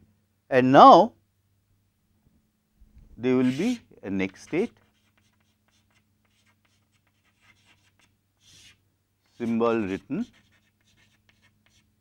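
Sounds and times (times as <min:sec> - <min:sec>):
chalk tapping and scratching on blackboard: 0:03.4 - 0:12.0.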